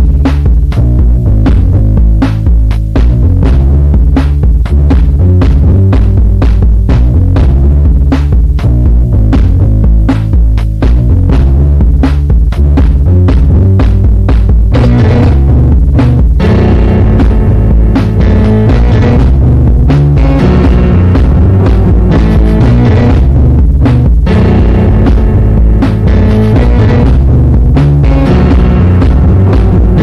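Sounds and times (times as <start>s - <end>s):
drum machine beat: 0.0s - 30.0s
heavy bass line: 0.0s - 30.0s.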